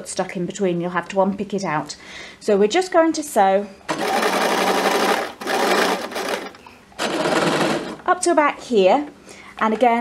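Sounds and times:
electric sewing machine stitching: 3.9 - 8.0.

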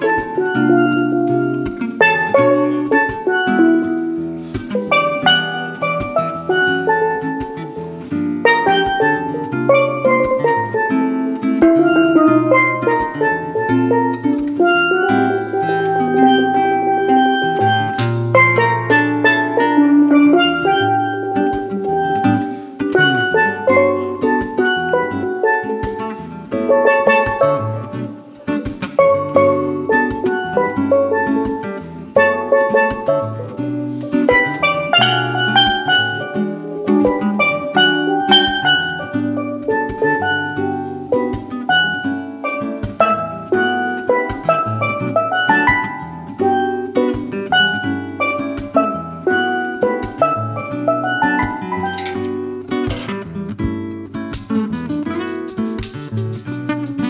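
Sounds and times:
acoustic guitar: 0.0 - 57.0
steel pan melody: 0.0 - 57.0
drum kit: 34.3 - 57.0.

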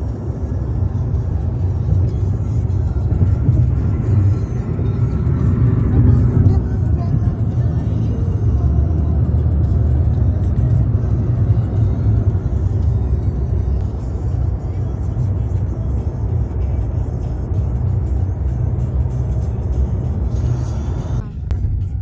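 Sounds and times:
car road and engine rumble: 0.0 - 22.0
music playing: 0.0 - 22.0.

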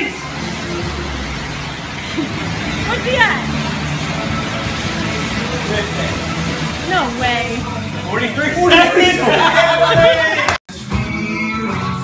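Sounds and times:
fan air bike whirring: 0.0 - 10.4
music playing: 0.0 - 12.0.

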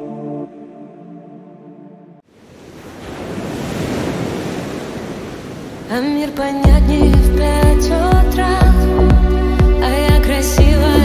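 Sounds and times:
song: 6.6 - 11.0.

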